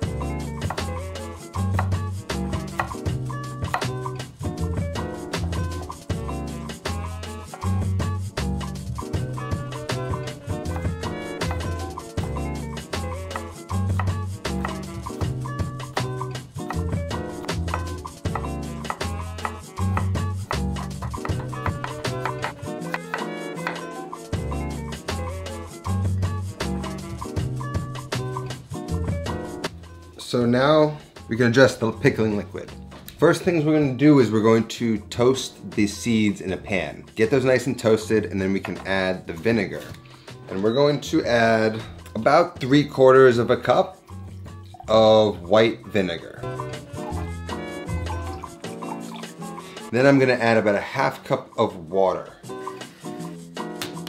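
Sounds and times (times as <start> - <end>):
upbeat latin music: 0.0 - 34.6, 35.2 - 54.0
knife slicing on wooden board: 10.7 - 11.9.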